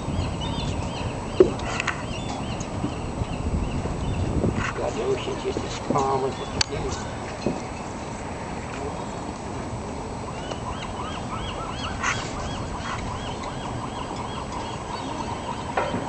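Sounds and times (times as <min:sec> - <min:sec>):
steady background noise: 0:00.0 - 0:16.0
sea lions barking: 0:00.7 - 0:16.0.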